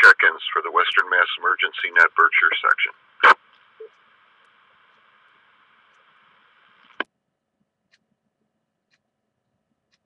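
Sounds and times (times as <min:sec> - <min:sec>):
radio squelch noise burst: 0:00.0 - 0:07.0
faint radio carrier hiss: 0:00.0 - 0:07.1
radio click: 0:00.8 - 0:07.1.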